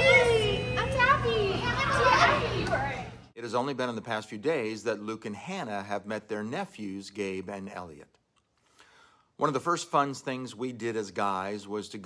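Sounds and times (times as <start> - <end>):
adults and children greeting excitedly: 0.0 - 3.3.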